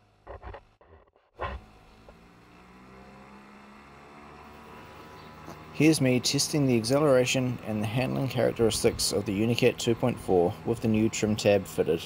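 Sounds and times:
outboard motor accelerating: 0.0 - 11.9.

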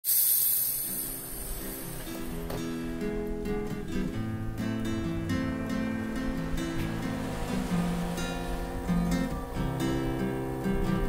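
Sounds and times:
loud hiss: 0.0 - 2.8
faint acoustic guitar notes: 1.2 - 11.0.

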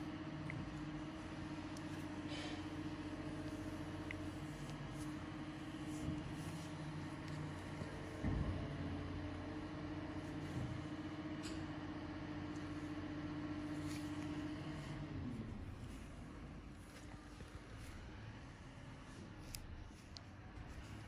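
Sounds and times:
low machine hum: 0.0 - 21.0.

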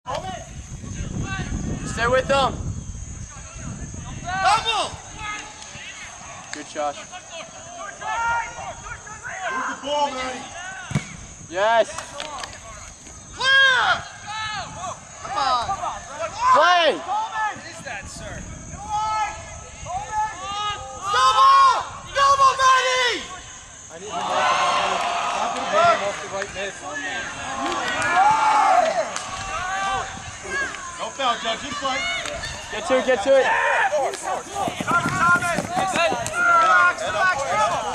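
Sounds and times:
players and spectators shouting: 3.4 - 12.4, 13.3 - 37.9.

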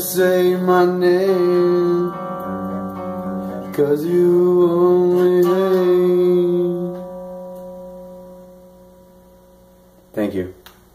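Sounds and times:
electric guitar note ringing: 0.0 - 10.4.

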